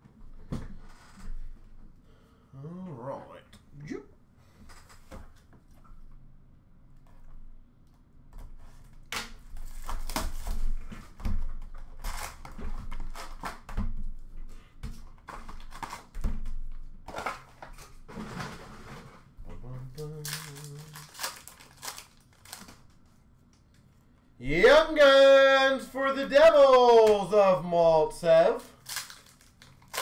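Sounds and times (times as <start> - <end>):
cardboard crinkling and tearing: 11.8 - 13.6, 20.2 - 22.9, 28.8 - 30.0.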